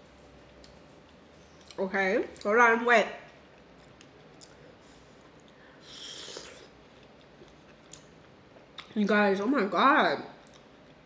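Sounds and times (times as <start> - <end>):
person chewing food: 3.3 - 9.0, 10.4 - 11.0.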